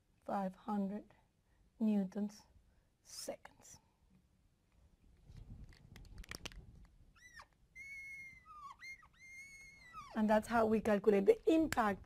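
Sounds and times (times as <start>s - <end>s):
marker squeaking on glass: 7.1s - 10.2s.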